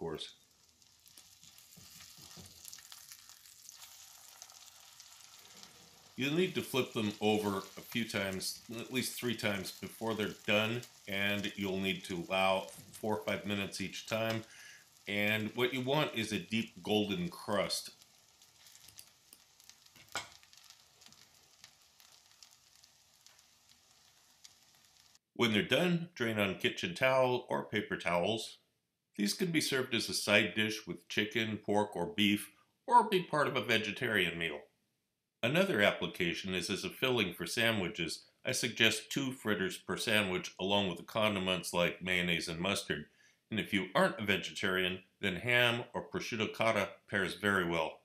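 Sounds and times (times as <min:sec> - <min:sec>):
fritters sizzling in a pan: 0:00.3 - 0:25.2.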